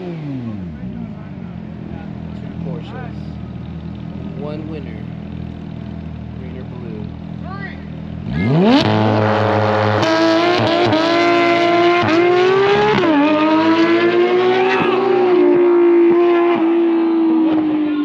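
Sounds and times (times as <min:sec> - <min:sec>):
car engines revving through gears: 0:00.0 - 0:01.2, 0:08.0 - 0:18.0
car engines idling: 0:00.0 - 0:18.0.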